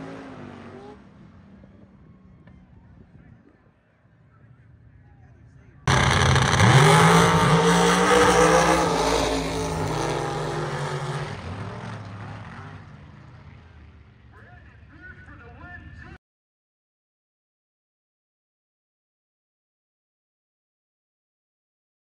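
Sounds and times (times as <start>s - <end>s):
drag car engines at full throttle: 0.0s - 2.9s, 5.9s - 14.3s.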